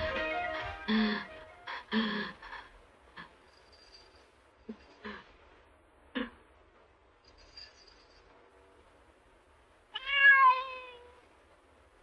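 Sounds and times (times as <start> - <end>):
cat meowing: 9.9 - 11.2.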